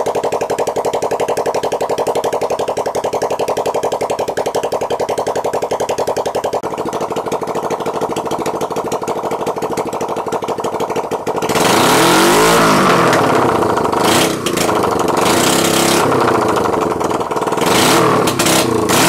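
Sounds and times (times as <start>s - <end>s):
motorcycle engine idling and revving: 0.0s - 19.0s.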